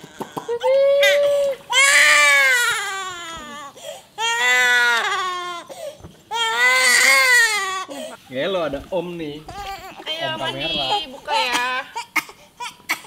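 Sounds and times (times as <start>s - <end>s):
baby crying: 0.0s - 8.2s, 9.5s - 13.0s.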